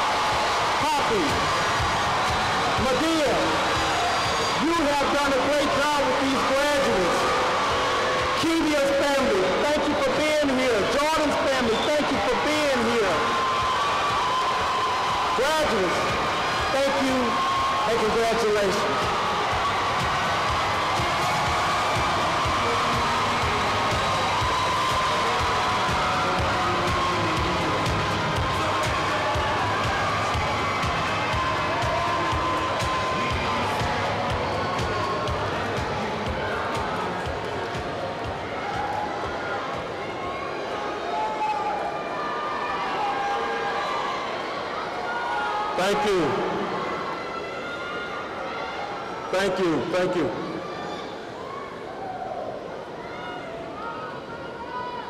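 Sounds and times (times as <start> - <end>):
crowd cheering and calling out: 0.0 - 55.0.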